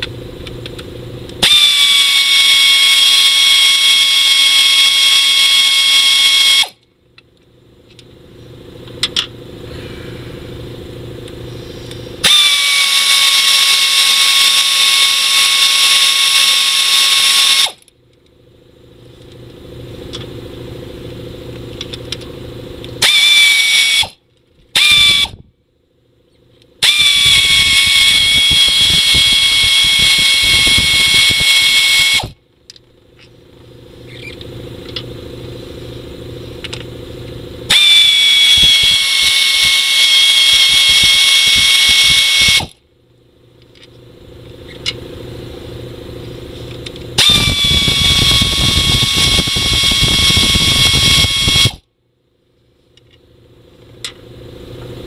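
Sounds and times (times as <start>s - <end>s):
low hum: 0.0s - 4.3s, 4.9s - 55.0s
air ratchet whining: 1.3s - 6.8s, 11.8s - 17.9s, 23.0s - 25.4s, 26.8s - 32.4s, 37.7s - 42.8s, 46.7s - 51.9s.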